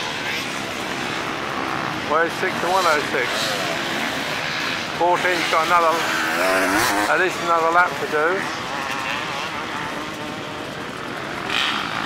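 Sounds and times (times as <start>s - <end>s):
motorcycle engine droning: 0.5s - 12.0s.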